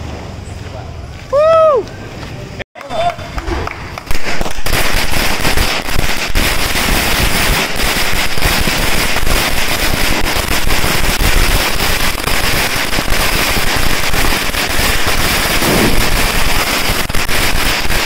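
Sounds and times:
firecrackers crackling: 0:01.7 - 0:18.0.

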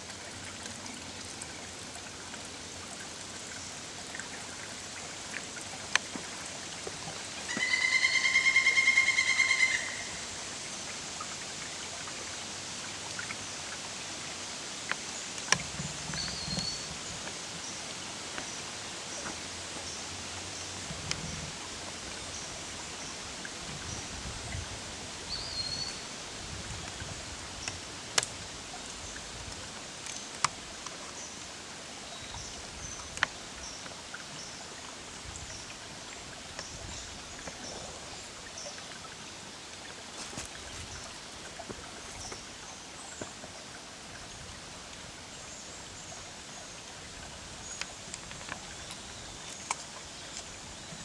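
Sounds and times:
stream water trickling: 0:00.0 - 0:51.0
bird whistle: 0:07.5 - 0:10.1
animal buzzy trill call: 0:07.6 - 0:10.1.

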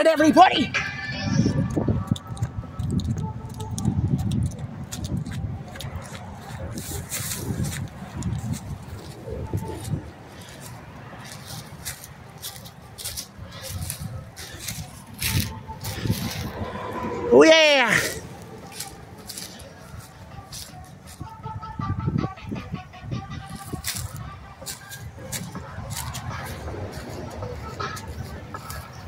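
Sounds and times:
distant instrumental music from car: 0:00.0 - 0:29.0
footsteps through grass: 0:04.4 - 0:17.2, 0:18.0 - 0:21.3, 0:23.5 - 0:29.0.

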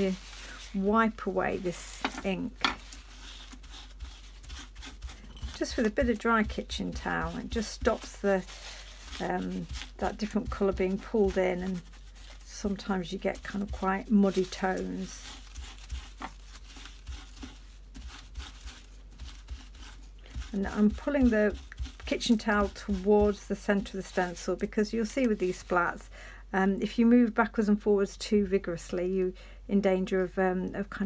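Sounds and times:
towel rubbing on stencil: 0:00.0 - 0:02.0, 0:02.8 - 0:24.7.

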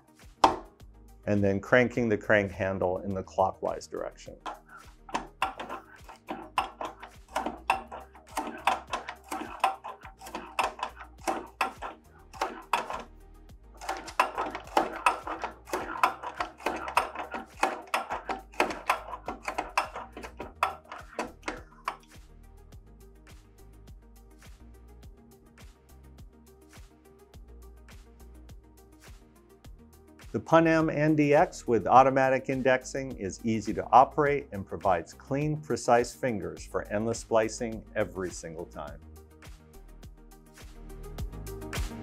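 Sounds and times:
background music: 0:00.0 - 0:42.0
punch machine clicking: 0:04.4 - 0:13.1, 0:13.8 - 0:22.1.

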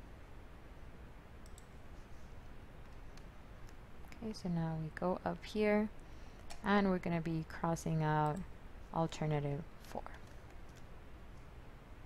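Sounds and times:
low steady background hum: 0:00.0 - 0:12.0
computer mouse clicks: 0:01.4 - 0:01.7.

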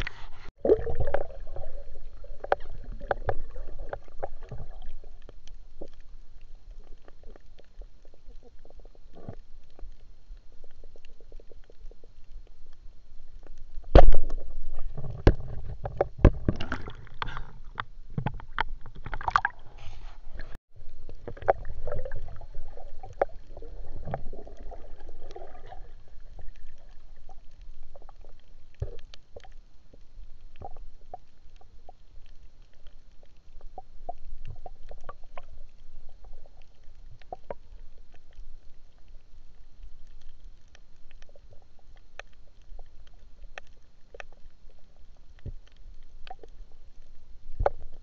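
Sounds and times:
low rumbling water movement: 0:00.0 - 0:48.0
sharp underwater clicks and crackles: 0:00.0 - 0:48.0.

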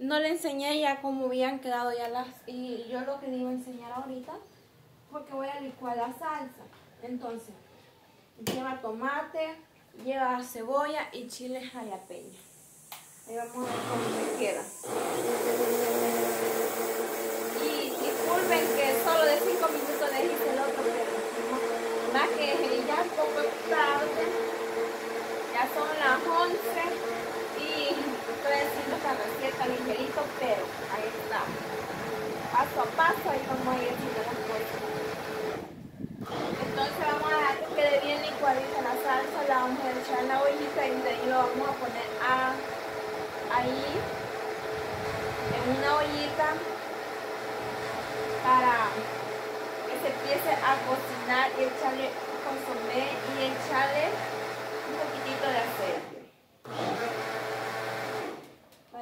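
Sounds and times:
electric blender running: 0:12.4 - 0:58.6.

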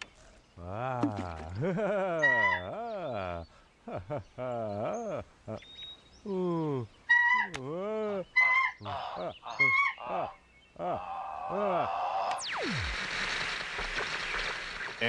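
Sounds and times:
cartoon caveman grunts and moans: 0:00.6 - 0:03.5, 0:06.2 - 0:06.9, 0:07.6 - 0:12.3.

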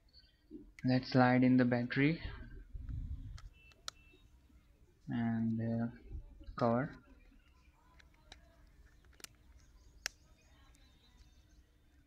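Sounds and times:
light plastic clicks: 0:06.6 - 0:11.4.

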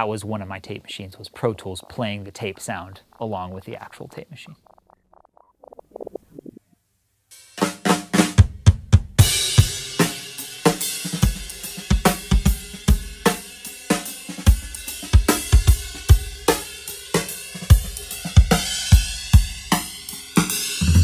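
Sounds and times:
flanged acoustic drum kit: 0:07.3 - 0:21.0.

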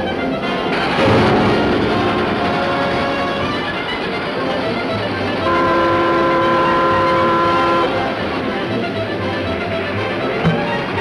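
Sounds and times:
running train noise: 0:00.0 - 0:11.0
steam locomotive whistle: 0:00.0 - 0:11.0.

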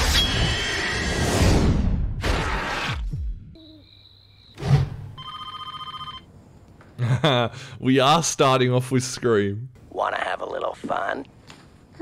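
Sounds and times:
electronic telephone ring: 0:05.2 - 0:06.3.

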